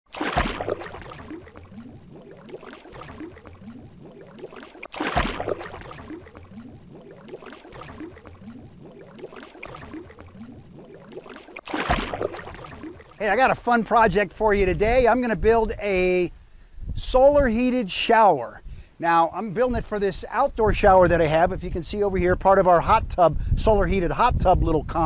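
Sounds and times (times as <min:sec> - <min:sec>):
water splash: 0:00.1 - 0:13.6
gurgling bubbling water: 0:00.1 - 0:14.0.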